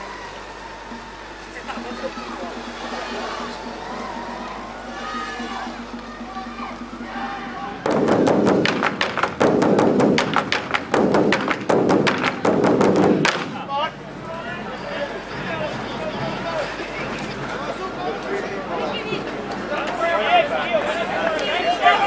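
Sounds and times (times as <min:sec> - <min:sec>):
barrel drums beaten fast: 0:01.6 - 0:13.8.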